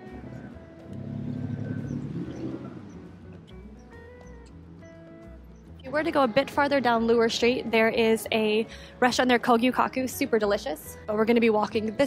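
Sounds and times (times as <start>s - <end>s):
pickup truck driving past: 0.0s - 5.4s.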